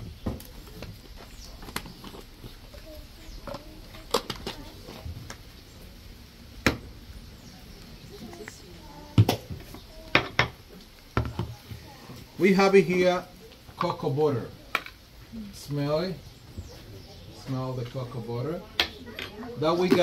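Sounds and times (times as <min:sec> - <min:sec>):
faint voices murmuring: 0:00.0 - 0:20.0.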